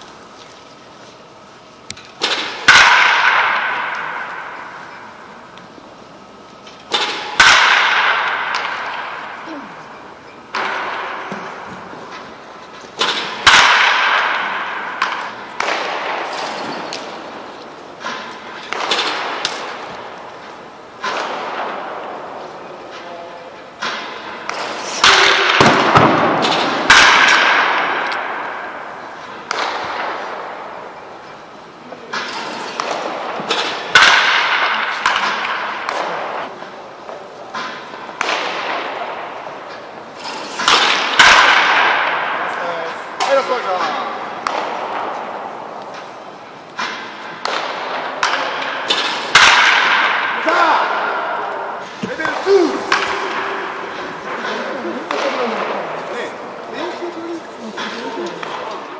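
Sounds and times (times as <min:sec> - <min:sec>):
baseball bat cracking balls: 0:00.0 - 0:58.9.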